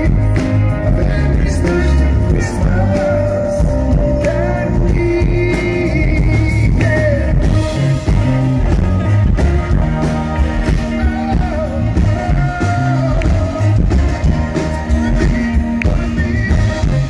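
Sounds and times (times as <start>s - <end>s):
man singing: 0.0s - 8.1s, 10.6s - 17.0s
live band playing: 0.0s - 17.0s.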